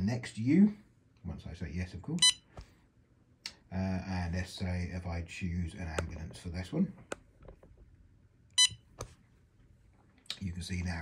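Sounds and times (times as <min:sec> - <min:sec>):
short high beep: 0:08.6 - 0:08.8.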